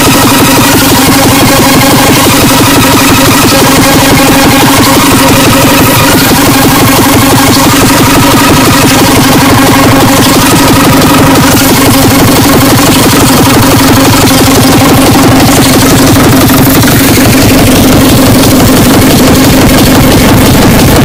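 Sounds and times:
distorted drone: 0.0s - 21.0s
fast distorted kick drum: 0.0s - 21.0s.

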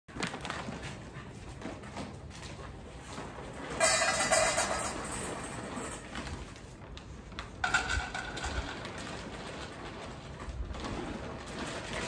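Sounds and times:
dog food bag rustling: 0.1s - 1.1s, 3.8s - 12.0s
kibble rattling into metal bowl: 3.8s - 6.4s, 7.6s - 9.3s.

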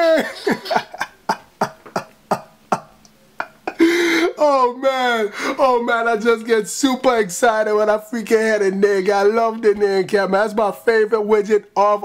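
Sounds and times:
man laughing in breathy puffs: 0.0s - 2.1s, 3.4s - 5.6s.

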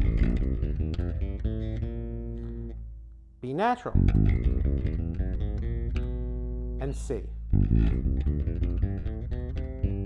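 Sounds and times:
electric bass plucked notes: 0.0s - 10.0s.

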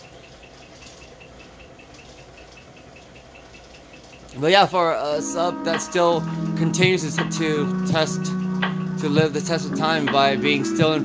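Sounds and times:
faint steady ticking: 0.0s - 11.0s
subwoofer playing low bass: 5.6s - 11.0s.

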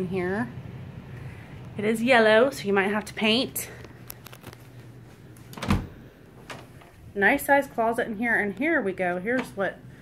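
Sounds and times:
closet door thump: 5.5s - 6.8s
closet door click: 5.5s - 7.0s.

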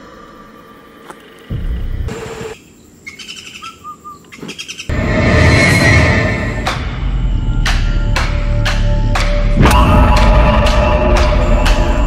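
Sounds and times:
birds chirping: 0.0s - 4.9s.

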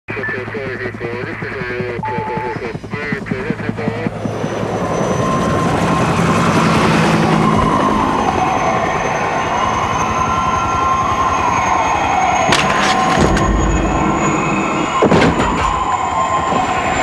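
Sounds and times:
squealing tone sliding down: 7.1s - 17.0s.

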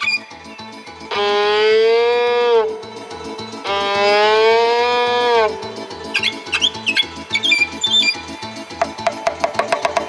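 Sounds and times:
plucked accompaniment: 8.8s - 10.0s.

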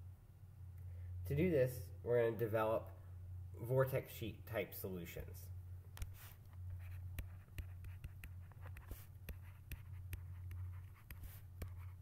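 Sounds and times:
steady low hum: 0.0s - 12.0s
stylus tapping on pen tablet: 7.1s - 12.0s.

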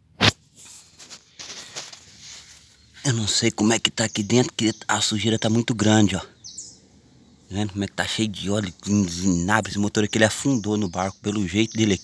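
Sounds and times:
faint rustling and handling: 0.5s - 3.2s.

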